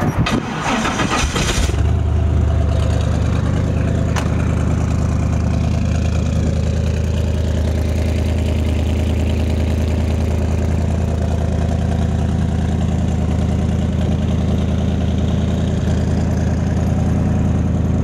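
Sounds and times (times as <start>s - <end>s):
car engine idling: 0.6s - 18.0s.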